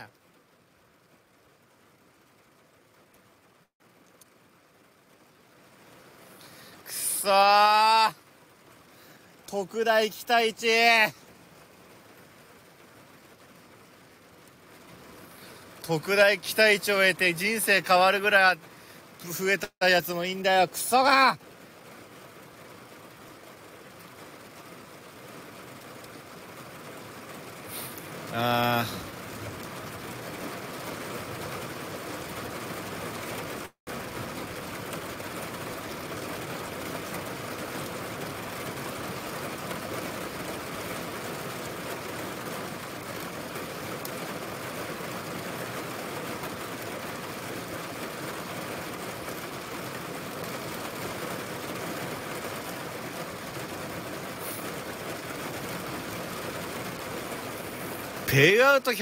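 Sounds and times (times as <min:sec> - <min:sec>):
heavy rain hissing: 0:00.0 - 0:59.0.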